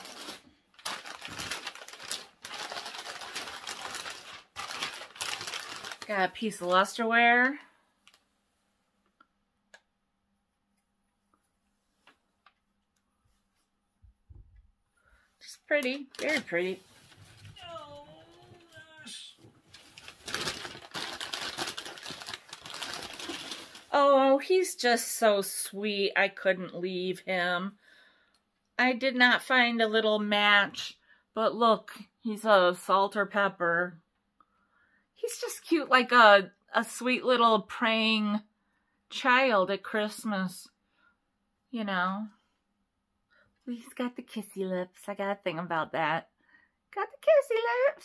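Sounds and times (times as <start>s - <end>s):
wrapping crinkling and rustling: 0.0s - 8.3s, 15.4s - 24.2s
person saying oh: 17.6s - 19.4s.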